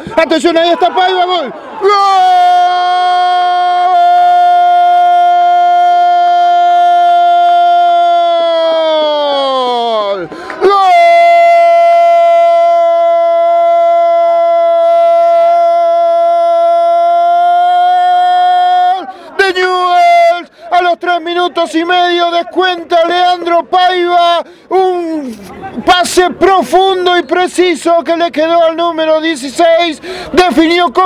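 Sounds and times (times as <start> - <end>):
commentator shouting goal: 0.1 - 6.0, 18.0 - 25.2
quick breath: 10.3 - 10.6, 19.1 - 19.4, 20.5 - 20.7, 24.4 - 24.7, 30.0 - 30.4.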